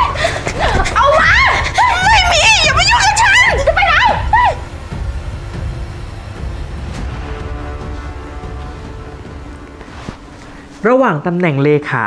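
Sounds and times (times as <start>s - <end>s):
low rumbling dramatic music: 0.0s - 12.0s
faint sustained tone: 1.0s - 11.3s.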